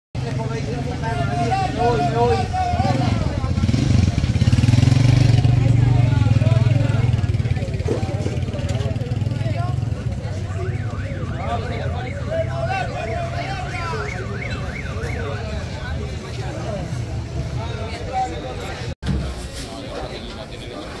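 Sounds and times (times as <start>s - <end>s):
crowd talking and calling out: 0.2s - 21.0s.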